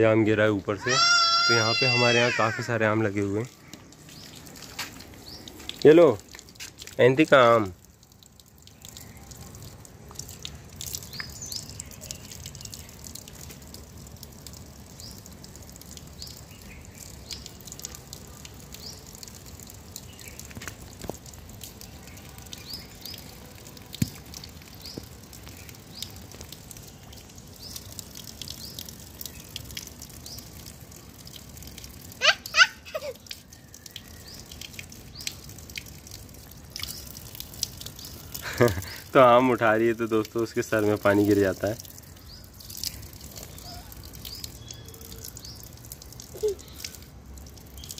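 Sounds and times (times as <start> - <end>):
water drips: 0.0 - 47.9
water splashing from tap onto stone: 0.4 - 47.9.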